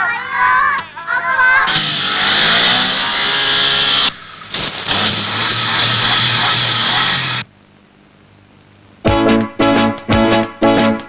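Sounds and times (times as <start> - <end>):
tyres hissing on dirt road: 1.7 - 7.4
car engine revving: 1.7 - 7.5.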